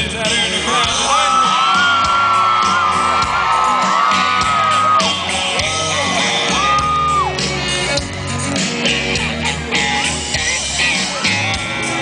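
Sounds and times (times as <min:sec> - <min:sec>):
live country band playing: 0:00.0 - 0:12.0
crowd whooping and cheering: 0:01.0 - 0:12.0.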